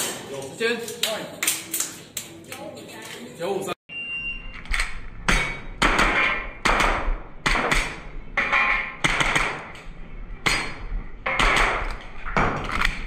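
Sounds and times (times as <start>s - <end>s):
pistol shots echoing indoors: 5.3s - 9.8s, 10.4s - 12.8s.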